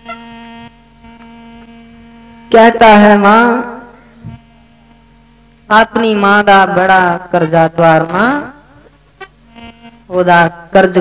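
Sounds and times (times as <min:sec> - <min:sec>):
harmonium sustained note: 0:00.0 - 0:11.0.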